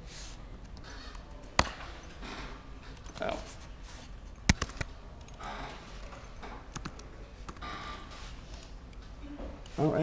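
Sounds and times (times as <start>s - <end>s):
soft rustles: 3.2s - 4.3s
keyboard keys clicking: 4.5s - 5.4s, 6.7s - 7.6s.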